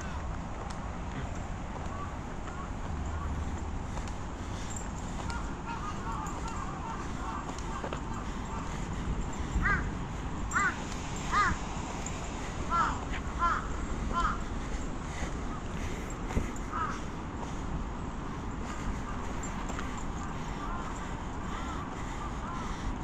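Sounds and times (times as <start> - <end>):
crow cawing: 1.9 - 3.5, 4.4 - 9.9, 10.5 - 11.6, 12.7 - 16.0, 16.6 - 17.2, 18.6 - 22.9.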